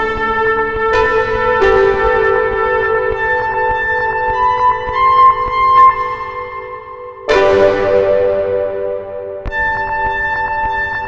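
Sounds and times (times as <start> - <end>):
synthesizer chords and melody: 0.0 - 11.0.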